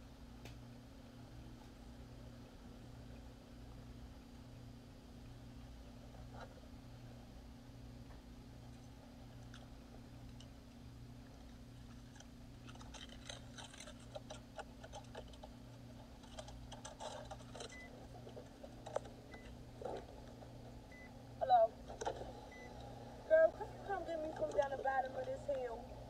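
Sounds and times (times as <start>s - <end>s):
steady low hum: 0.0s - 26.0s
phone rustling and clicking: 11.3s - 20.8s, 21.8s - 22.6s
person speaking: 23.3s - 26.0s.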